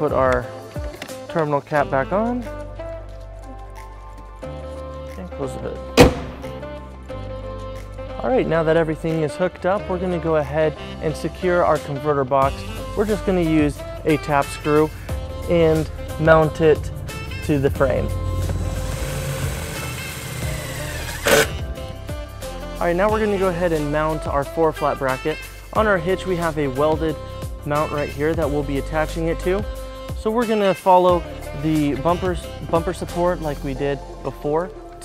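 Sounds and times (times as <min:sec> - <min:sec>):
background music: 0:00.0 - 0:35.0
car hood shutting thump: 0:06.0 - 0:06.6
cordless drill driving screw: 0:18.9 - 0:21.6.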